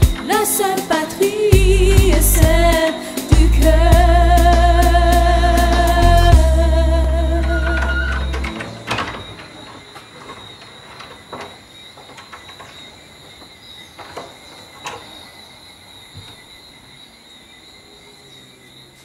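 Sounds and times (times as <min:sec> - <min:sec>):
music: 0:00.0 - 0:08.8
crickets chirring: 0:00.0 - 0:19.0
sharp clicks and knocks: 0:07.4 - 0:15.2.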